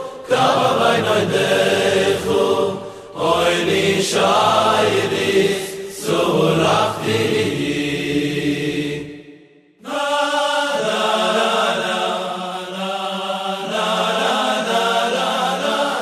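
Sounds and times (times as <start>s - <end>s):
voices singing chant-like notes: 0.0s - 16.0s.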